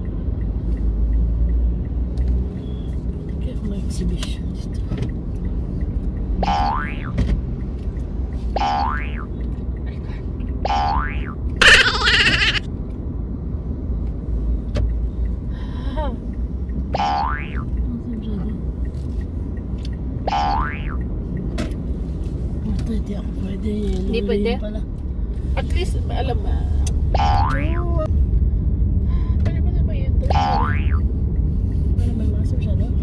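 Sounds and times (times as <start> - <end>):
steady low rumble: 3.4 - 33.0
cartoon boing twangs: 6.4 - 7.2, 8.6 - 9.3, 10.6 - 12.6, 17.0 - 17.7, 20.3 - 21.0, 27.2 - 27.9, 30.3 - 31.0.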